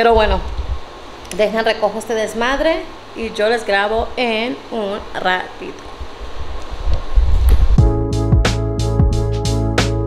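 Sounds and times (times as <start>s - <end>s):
microphone handling rumble: 0.0s - 0.9s, 5.9s - 8.0s
music with drum beat: 7.8s - 10.0s.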